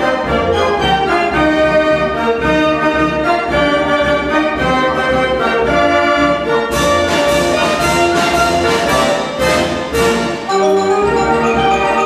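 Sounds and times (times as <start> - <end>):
dance organ playing a tune: 10.4 - 12.0.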